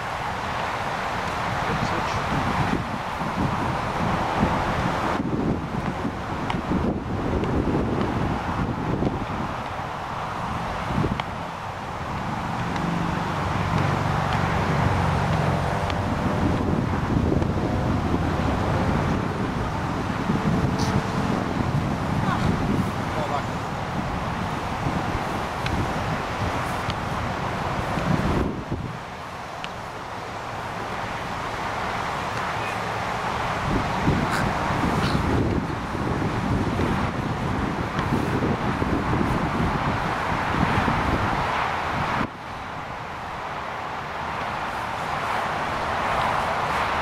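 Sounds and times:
steady outdoor hiss: 0.0s - 47.0s
wind rumbling on microphone: 0.0s - 47.0s.

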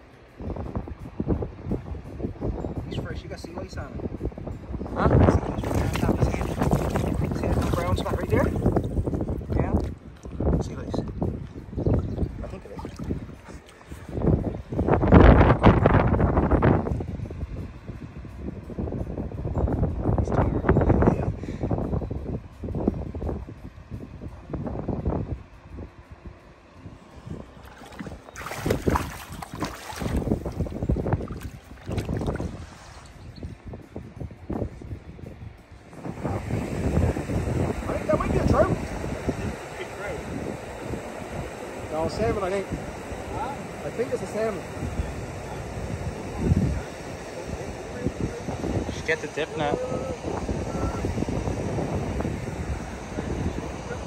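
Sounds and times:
wind buffeting microphone: 0.0s - 54.0s
river water splashing: 5.6s - 8.9s, 12.4s - 14.0s, 27.6s - 33.2s.

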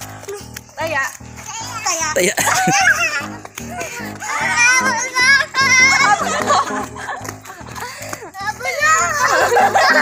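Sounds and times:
background music with steady beat: 0.0s - 10.0s
children shouting and squealing: 1.4s - 7.1s, 7.7s - 10.0s.

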